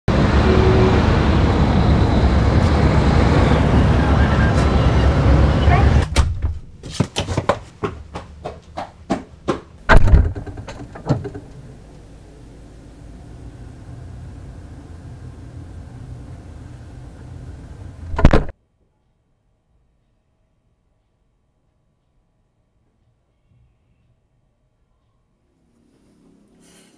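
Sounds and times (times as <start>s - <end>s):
traffic rumble: 0.1s - 6.8s, 9.4s - 18.5s
passers-by voices: 3.2s - 6.0s
sharp knocks and clicks: 8.8s - 11.6s, 18.1s - 18.5s
low hum with high whine: 9.8s - 18.5s
heavy thump: 9.9s - 11.6s, 18.1s - 18.5s.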